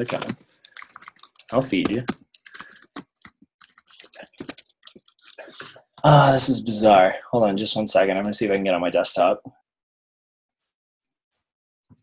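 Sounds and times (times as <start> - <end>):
computer keyboard typing: 0.0 - 5.4.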